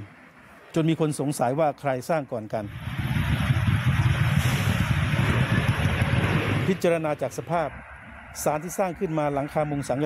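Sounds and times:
wind buffeting microphone: 2.7 - 10.0.

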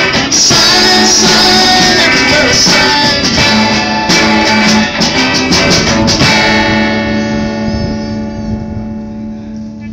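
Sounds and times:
electric guitar chord ringing: 3.3 - 9.9.

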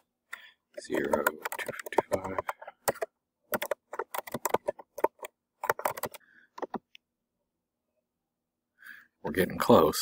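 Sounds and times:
computer keyboard typing: 0.8 - 6.9.

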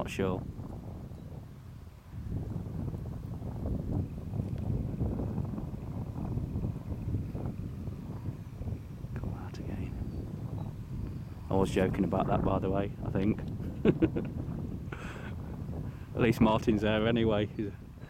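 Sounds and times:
distant aircraft engine drone: 0.0 - 18.0
wind buffeting microphone: 0.0 - 18.0.

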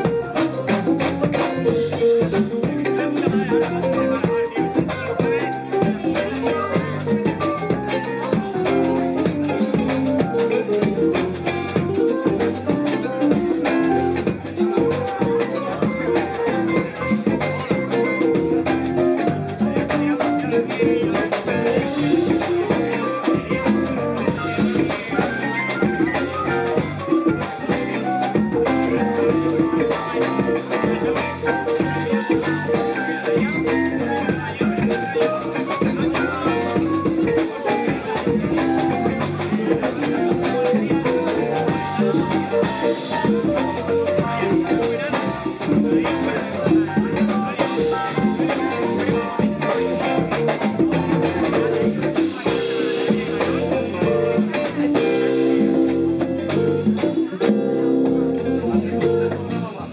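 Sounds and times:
drum kit: 0.0 - 59.9
electric bass: 0.0 - 59.9
electric guitar: 0.0 - 59.9.

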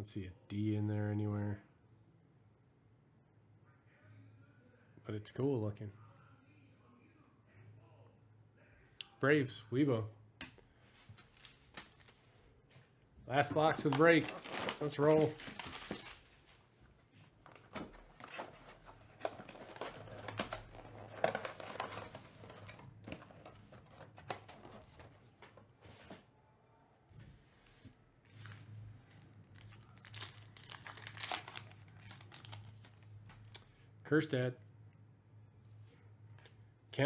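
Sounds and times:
faint low hum: 0.0 - 37.0
plastic wrap crinkling and tearing: 13.5 - 16.4, 18.1 - 22.8, 28.4 - 33.6.

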